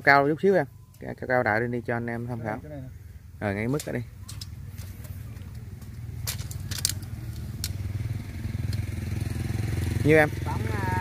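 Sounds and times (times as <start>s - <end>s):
small engine running: 7.5s - 11.0s.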